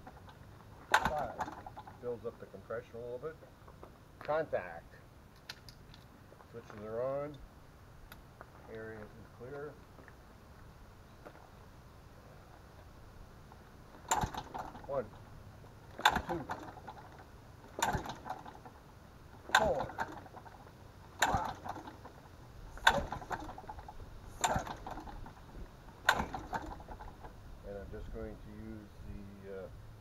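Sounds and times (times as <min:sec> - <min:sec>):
engine pull start cranking: 0:00.0 - 0:02.2, 0:14.0 - 0:15.2, 0:15.8 - 0:27.4.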